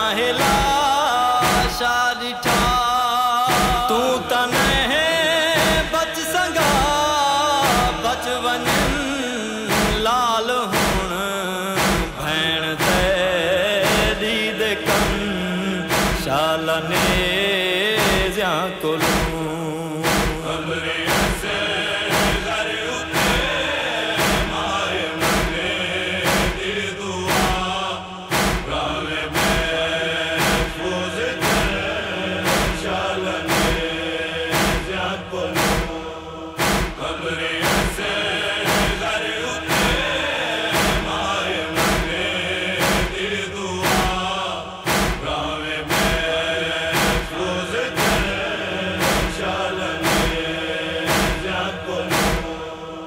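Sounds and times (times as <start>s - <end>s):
chorus chanting a lament: 0.0s - 53.0s
heavy struck beat: 0.0s - 53.0s.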